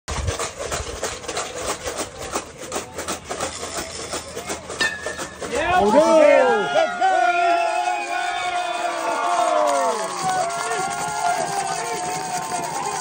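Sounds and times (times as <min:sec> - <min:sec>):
spectators chattering: 0:00.4 - 0:13.0
metal bat hitting ball: 0:04.8 - 0:05.4
spectators cheering and shouting: 0:04.8 - 0:13.0.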